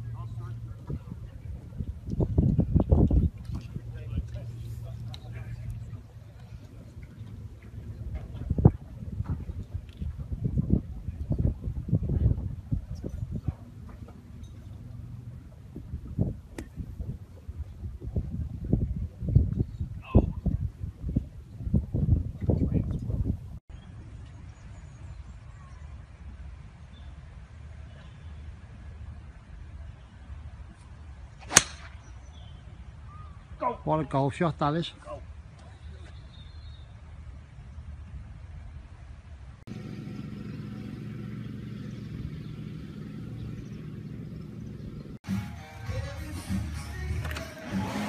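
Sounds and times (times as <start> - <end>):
wind buffeting microphone: 0.0 - 25.4
golf club striking ball: 31.4 - 32.0.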